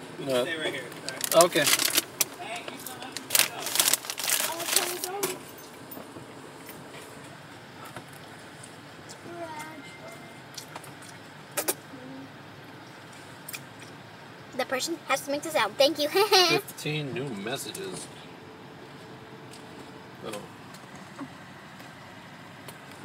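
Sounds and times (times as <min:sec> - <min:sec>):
rustling and crinkling: 0:00.9 - 0:08.8.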